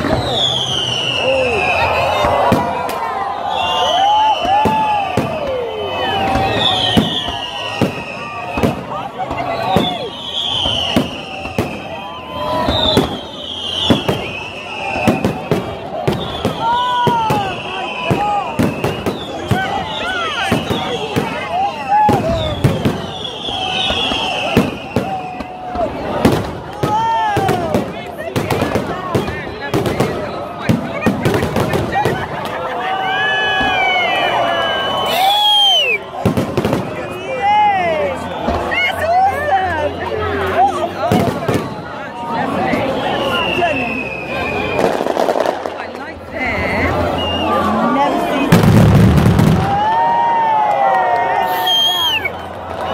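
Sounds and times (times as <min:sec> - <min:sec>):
fireworks bangs and crackling: 0:00.0 - 0:52.9
high falling whistles: 0:00.1 - 0:02.3, 0:03.4 - 0:08.8, 0:09.5 - 0:21.5, 0:22.3 - 0:25.5, 0:33.4 - 0:36.1, 0:42.8 - 0:45.0, 0:51.4 - 0:52.4.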